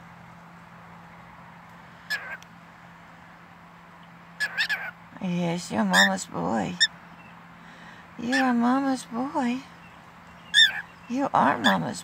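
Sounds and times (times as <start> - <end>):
cockatiel chirping: 4.4 - 4.9, 10.5 - 10.8.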